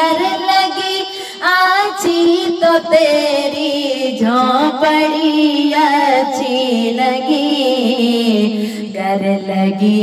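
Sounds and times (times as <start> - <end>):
high voice singing: 0.0 - 10.0
person breathing in: 1.1 - 1.4, 8.6 - 8.9.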